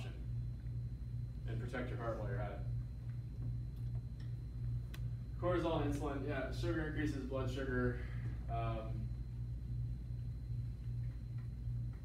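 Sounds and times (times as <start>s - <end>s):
pulsing low hum: 0.0s - 12.0s.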